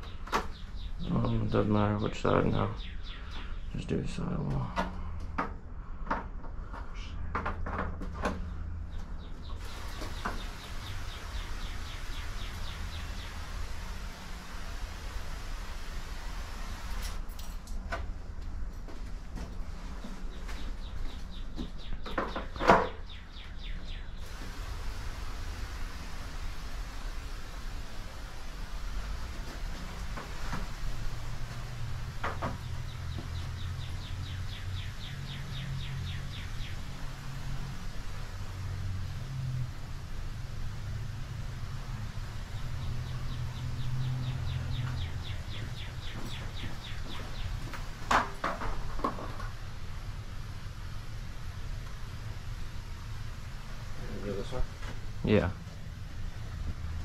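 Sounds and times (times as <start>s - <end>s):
sprayer hissing: 9.6s - 17.2s, 24.2s - 34.4s.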